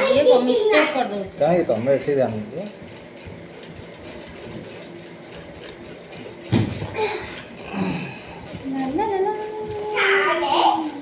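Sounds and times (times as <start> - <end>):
loud thump: 6.5 - 6.9.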